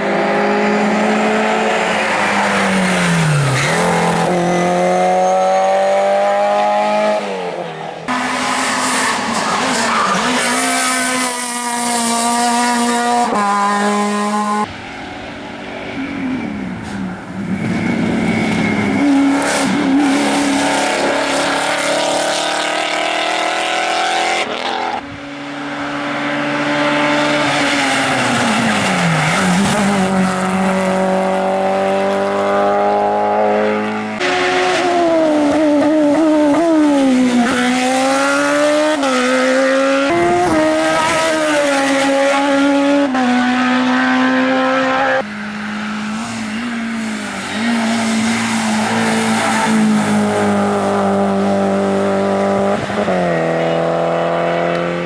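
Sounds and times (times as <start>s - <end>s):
race car engines revving past: 0.0s - 55.0s.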